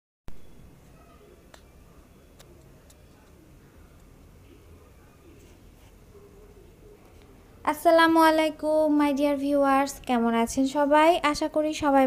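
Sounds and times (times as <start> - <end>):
faint low hum: 0.3 - 12.0.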